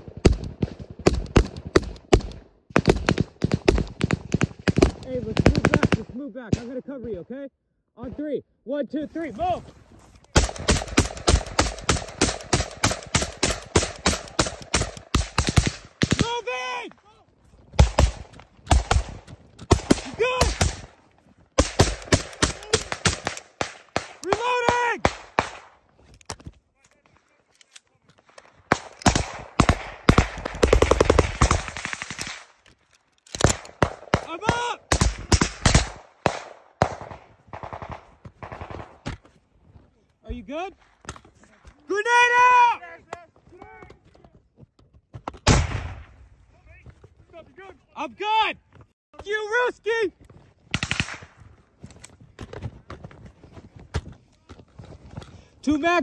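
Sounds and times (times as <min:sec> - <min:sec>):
automatic gunfire: 0:10.4 - 0:16.3, 0:17.8 - 0:20.9, 0:21.6 - 0:24.4, 0:28.7 - 0:32.4, 0:33.4 - 0:39.0.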